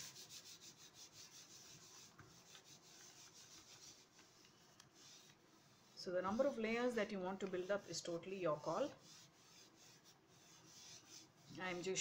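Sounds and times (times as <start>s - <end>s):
hands rubbing paper: 0.0s - 12.0s.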